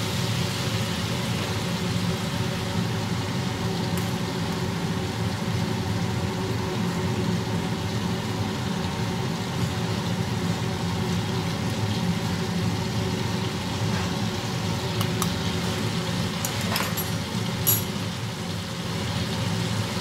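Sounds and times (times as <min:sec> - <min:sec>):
butter sizzling in a frying pan: 0:00.0 - 0:20.0.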